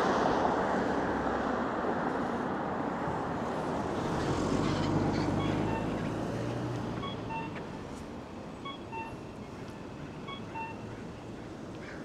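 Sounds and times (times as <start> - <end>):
street traffic noise: 0.0 - 12.0
crossing signal two-note beeps: 5.4 - 6.0, 7.0 - 7.6, 8.6 - 9.2, 10.2 - 10.9.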